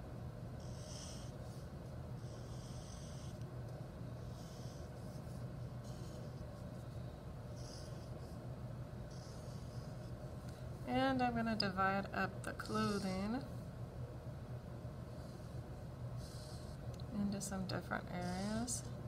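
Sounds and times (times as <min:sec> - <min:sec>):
steady low hum: 0:00.0 - 0:19.0
marker scratching on paper: 0:00.6 - 0:03.4, 0:04.2 - 0:07.0.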